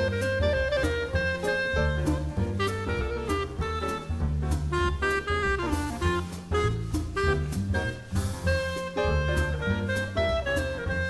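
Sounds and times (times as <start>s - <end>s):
drum kit cymbal strokes: 0.0s - 10.9s
clarinet melody: 0.0s - 11.0s
double bass: 0.0s - 11.0s
piano: 0.0s - 11.0s.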